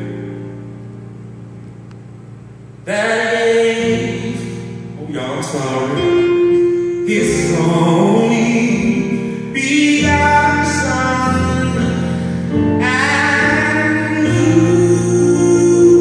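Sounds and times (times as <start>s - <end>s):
electric keyboard chords: 0.0s - 16.0s
man singing gospel song: 2.8s - 16.0s.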